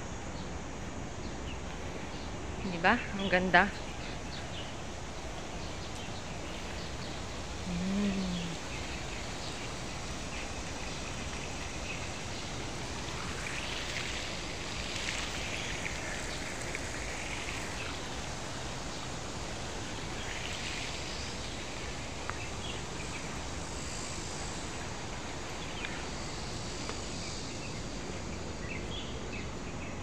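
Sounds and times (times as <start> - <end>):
fountain water splashing into pond: 3.6 - 7.7, 8.4 - 29.4.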